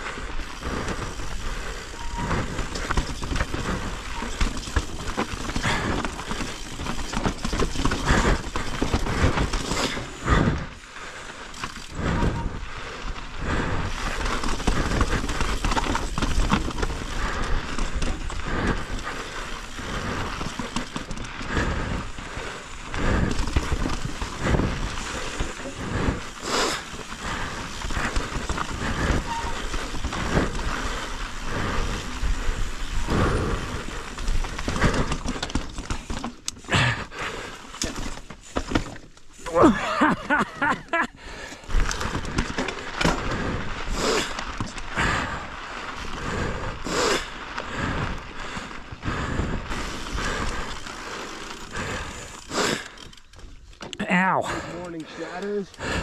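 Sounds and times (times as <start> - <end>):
bike rattling and clunking: 0.0 - 56.0
bike tyres crunching over stones: 0.0 - 56.0.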